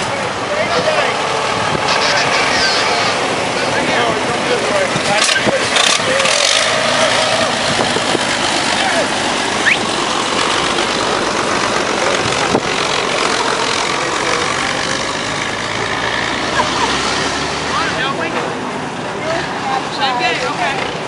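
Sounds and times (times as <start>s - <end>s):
antique car engine running: 0.0s - 17.0s.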